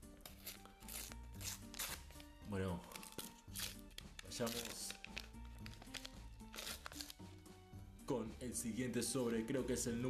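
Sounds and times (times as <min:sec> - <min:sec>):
background music: 0:00.0 - 0:10.0
paper stickers rustling: 0:02.9 - 0:07.3.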